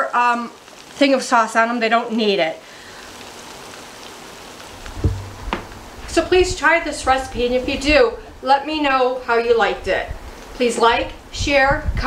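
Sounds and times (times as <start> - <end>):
ribs sizzling: 0.0 - 11.8
soft knocks: 4.9 - 6.1.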